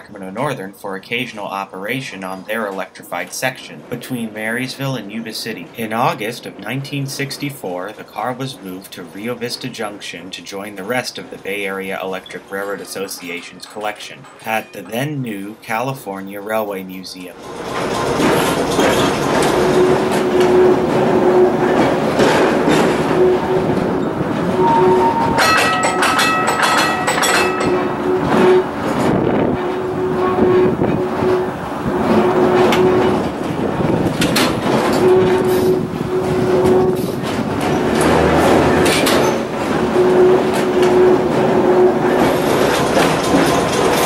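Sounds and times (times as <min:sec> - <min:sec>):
streetcar wheels clattering on rails: 0:00.0 - 0:44.0
steady hum: 0:17.5 - 0:44.0
high ringing tones: 0:22.6 - 0:33.2.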